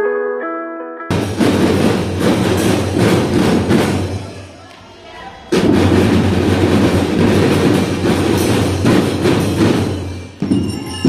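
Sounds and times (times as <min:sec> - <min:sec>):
children's drum band playing: 0:01.1 - 0:11.0.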